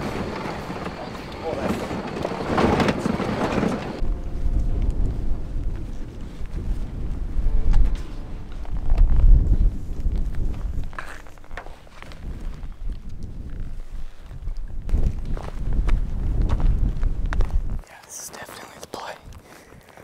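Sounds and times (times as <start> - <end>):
truck driving on dirt track: 0.0 - 4.0
wind buffeting microphone: 0.0 - 17.8
rustling and footsteps in grass: 4.0 - 16.2.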